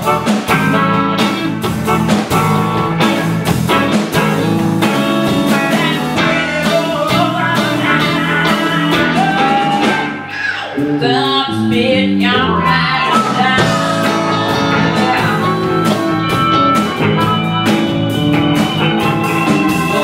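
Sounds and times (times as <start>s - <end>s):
blues band playing: 0.0s - 20.0s
woman singing: 5.7s - 10.2s, 11.0s - 16.0s.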